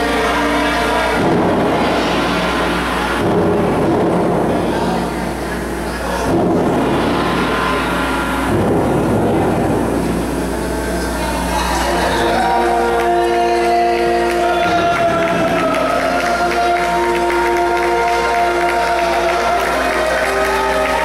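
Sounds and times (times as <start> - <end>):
loud noisy entrance music: 0.0 - 21.0.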